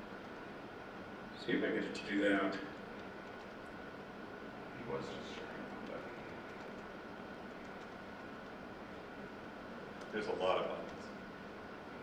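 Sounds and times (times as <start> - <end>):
faint high whine: 0.0 - 12.0.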